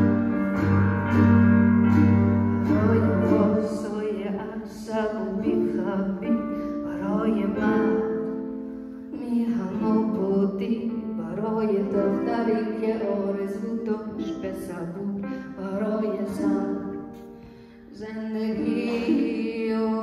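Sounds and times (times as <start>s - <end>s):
ukulele strumming: 0.0s - 8.6s, 9.2s - 20.0s
piano accompaniment: 0.0s - 20.0s.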